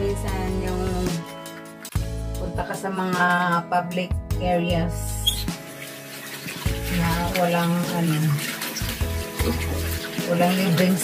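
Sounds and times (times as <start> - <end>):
background music: 0.0 - 11.0
tap water running over hands: 5.1 - 11.0.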